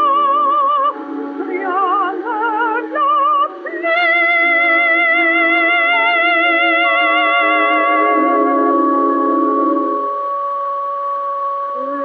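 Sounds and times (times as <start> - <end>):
musical accompaniment: 0.0 - 12.0
woman singing operatic aria: 0.0 - 12.0.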